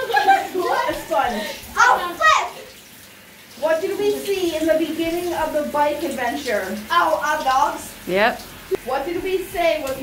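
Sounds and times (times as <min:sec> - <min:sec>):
people speaking: 0:00.0 - 0:02.7, 0:03.6 - 0:10.0
shower water running: 0:00.0 - 0:10.0.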